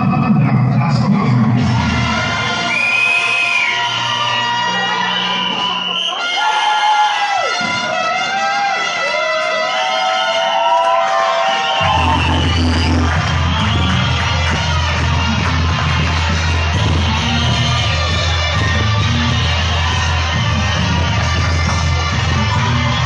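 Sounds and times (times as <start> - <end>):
heavy bass line: 0.0 - 5.4, 11.8 - 23.0
loud dance music: 0.0 - 23.0
crowd whooping: 2.0 - 23.0.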